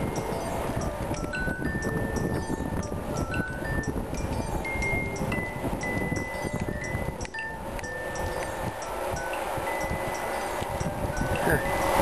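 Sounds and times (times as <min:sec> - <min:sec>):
chiming melody: 0:00.0 - 0:12.0
light ticking: 0:00.0 - 0:12.0
wind and road noise: 0:00.0 - 0:12.0.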